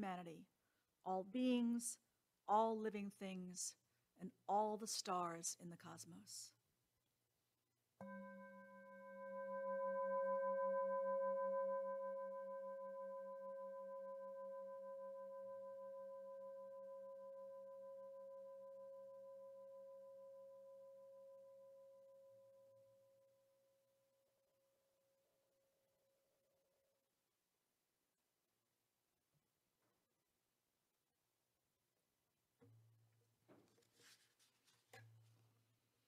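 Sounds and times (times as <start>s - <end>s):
metal singing bowl ringing: 8.0s - 21.6s.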